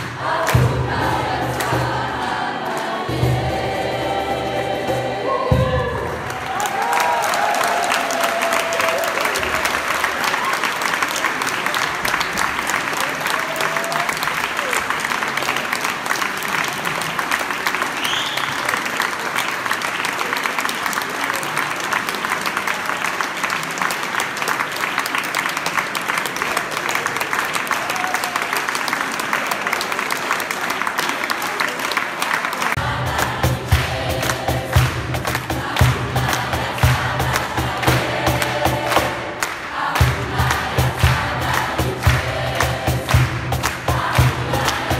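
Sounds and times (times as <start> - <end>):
choir singing: 0.0 - 6.4, 32.8 - 44.9
audience applauding: 5.9 - 44.9
cajon beat: 32.8 - 44.9.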